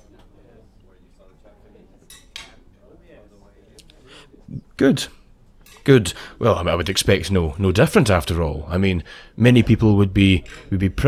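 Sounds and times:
cutlery clinking against a dish: 2.1s - 2.6s, 5.6s - 5.9s.

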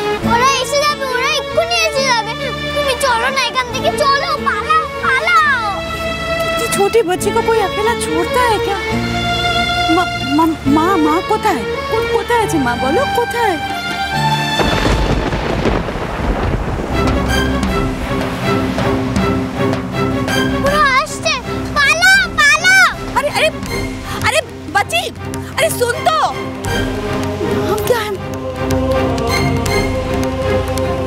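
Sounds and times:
background music with held notes: 0.0s - 31.0s.

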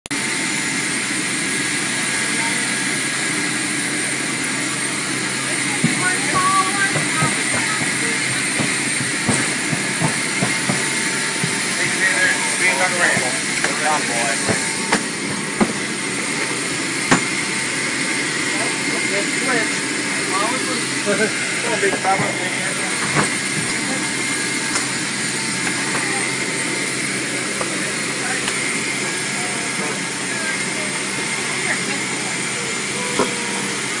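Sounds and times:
aircraft engines running: 0.0s - 34.0s.

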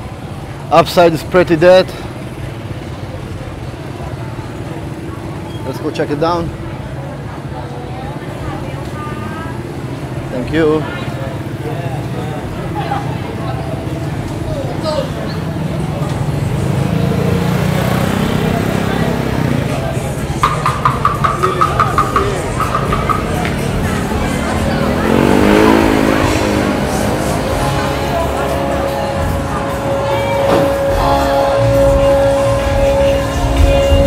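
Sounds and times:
street traffic rumble: 0.0s - 34.0s
motor scooter engine humming: 1.7s - 34.0s.

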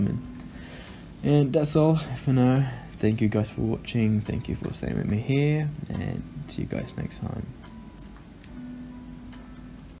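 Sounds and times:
faint steady low hum: 0.0s - 10.0s.

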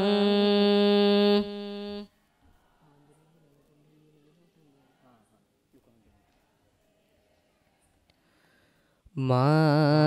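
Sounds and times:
person chanting one note: 0.0s - 2.1s.

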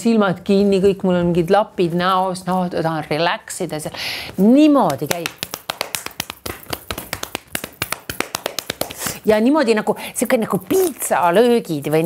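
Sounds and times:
hand claps and slaps: 4.8s - 9.2s.

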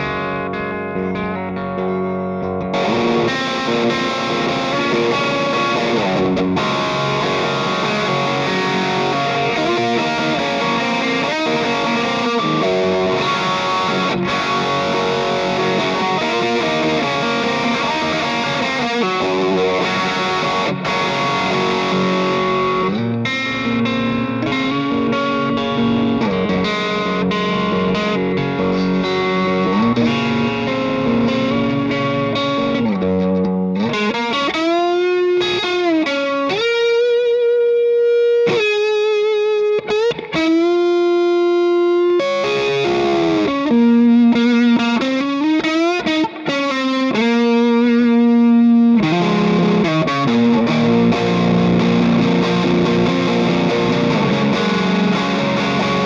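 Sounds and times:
overdriven electric guitar: 0.0s - 56.0s.

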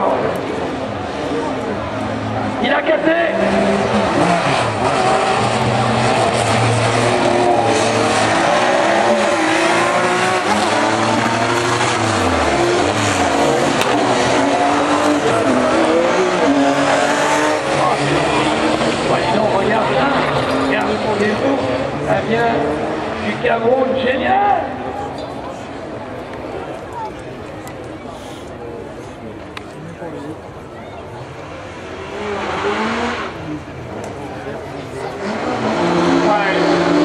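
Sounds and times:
racing car engines revving: 0.0s - 37.0s.

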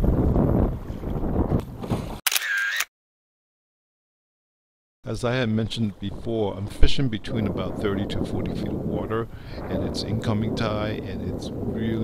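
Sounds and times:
choppy water: 0.0s - 1.6s, 5.4s - 12.0s
wind buffeting microphone: 0.0s - 2.2s, 5.3s - 12.0s
camera shutter sound effect: 2.3s - 2.9s.

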